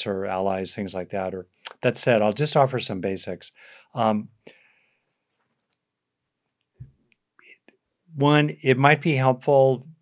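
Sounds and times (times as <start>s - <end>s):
quick breath: 3.6s - 5.2s.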